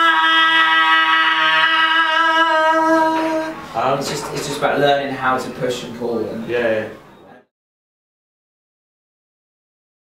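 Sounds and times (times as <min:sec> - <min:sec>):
man singing high note with grit: 0:00.0 - 0:03.6.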